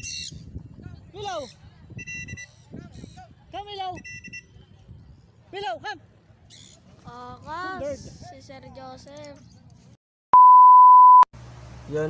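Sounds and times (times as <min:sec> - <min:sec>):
loud steady beep tone: 0:10.4 - 0:11.3.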